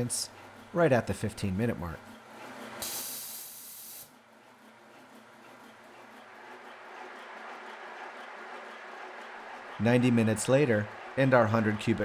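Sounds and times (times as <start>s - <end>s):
air compressor running: 2.5s - 4.1s
hiss of escaping air: 2.8s - 4.1s.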